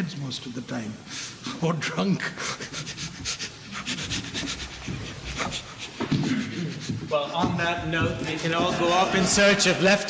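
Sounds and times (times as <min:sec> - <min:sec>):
people laughing: 0:05.4 - 0:10.0.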